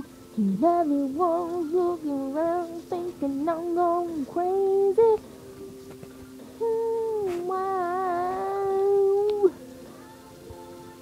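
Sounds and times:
woman singing long wordless note: 0.4 - 5.2, 6.6 - 11.0.

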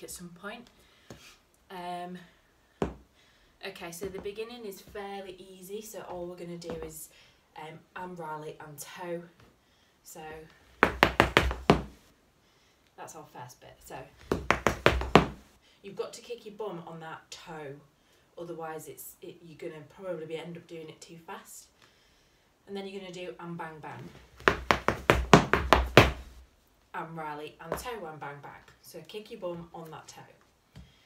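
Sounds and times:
hard shoes striking floor mat: 2.8 - 3.0, 10.8 - 12.0, 14.2 - 15.5, 24.4 - 26.4.

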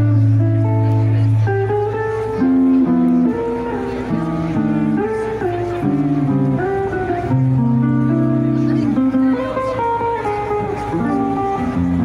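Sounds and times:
double bass notes: 0.0 - 12.0
electric guitar melody: 0.0 - 12.0.

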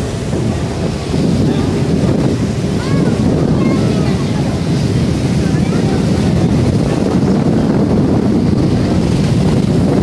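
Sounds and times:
ferry propeller wake rushing: 0.0 - 10.0
wind buffeting microphone: 0.0 - 10.0.

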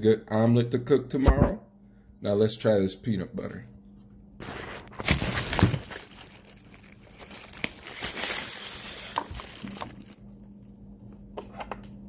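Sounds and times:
crinkling handling noise: 3.8 - 11.2.

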